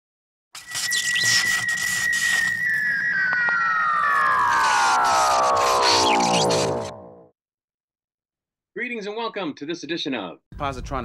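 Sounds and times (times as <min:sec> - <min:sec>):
steady high synth tone: 0:00.6 - 0:07.3
falling glide of synth tones: 0:01.0 - 0:07.3.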